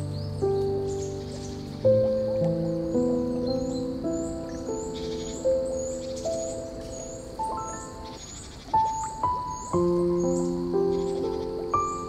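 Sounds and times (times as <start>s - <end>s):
high chirps: 0.0s - 12.0s
slow gentle piano music: 0.0s - 12.0s.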